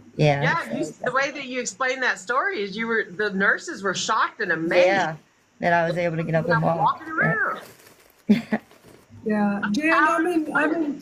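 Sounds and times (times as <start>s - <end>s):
person saying yeah: 0.2s - 1.1s.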